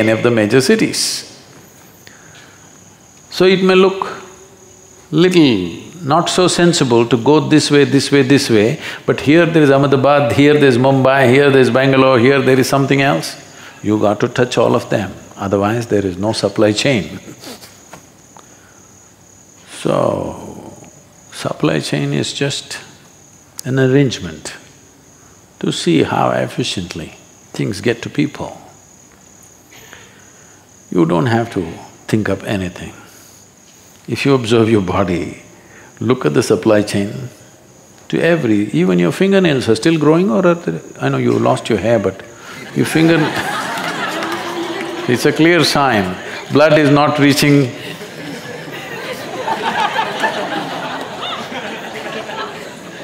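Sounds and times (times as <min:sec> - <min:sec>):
man talking: 0:00.0 - 0:01.4, 0:03.3 - 0:04.4, 0:05.1 - 0:17.4, 0:34.1 - 0:37.4, 0:38.1 - 0:43.7, 0:45.0 - 0:48.0
audience laughing and murmuring: 0:42.5 - 0:53.0.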